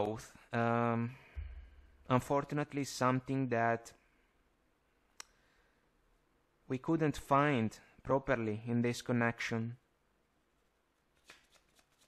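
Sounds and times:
cards rustling on a table: 11.1s - 12.0s.

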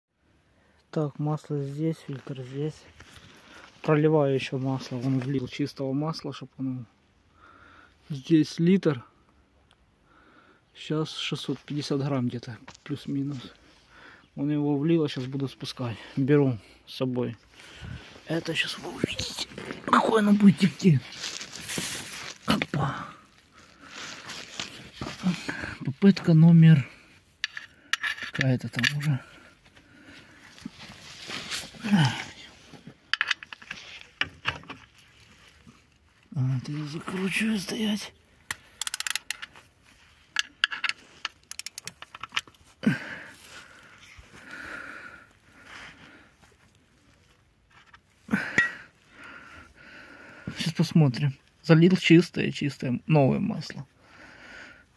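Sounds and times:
phone rustling against grass: 17.1s - 49.0s
scuffs: 20.6s - 22.5s
ratchet wrench clicking: 38.5s - 39.4s, 40.6s - 42.0s.

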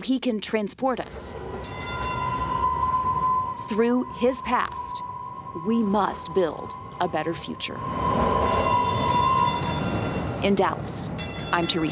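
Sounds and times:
light rail train passing: 1.0s - 11.9s
high steady whine: 1.3s - 10.0s.

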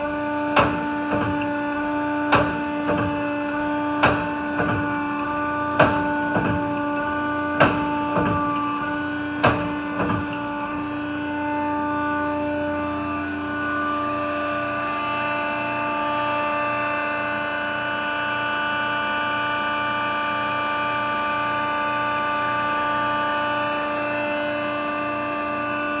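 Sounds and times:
hydraulic machine humming: 0.0s - 26.0s.

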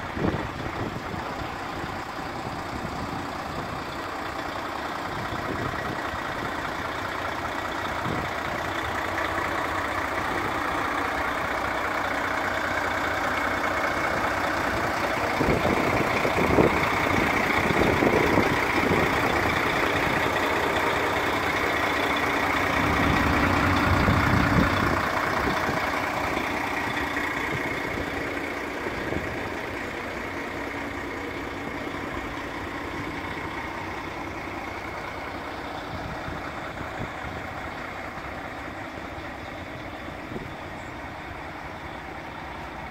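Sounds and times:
diesel truck engine idling: 0.0s - 42.9s.

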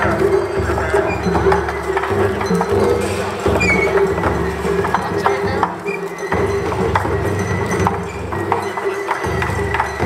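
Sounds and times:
crowd voices: 0.0s - 10.0s
festival music with held tones: 0.0s - 10.0s
sharp rhythmic knocks: 0.0s - 10.0s.

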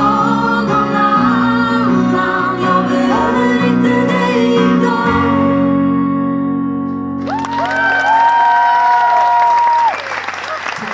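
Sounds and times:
guitar chords: 0.0s - 7.2s.

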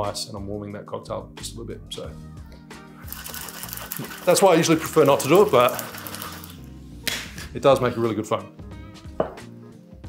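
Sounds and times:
metal cocktail shaker rattling: 3.0s - 6.6s.

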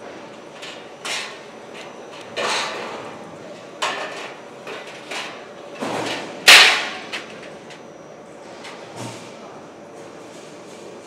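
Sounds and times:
metal trays clanking: 3.8s - 7.5s.

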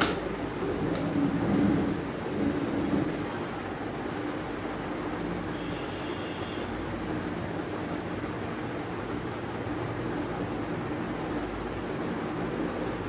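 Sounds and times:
steady background hum and hiss: 0.0s - 13.0s.

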